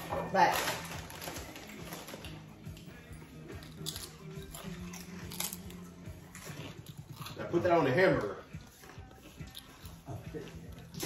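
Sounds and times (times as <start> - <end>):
faint background music: 0.0 - 11.0
chips crunching and chewing: 0.4 - 11.0.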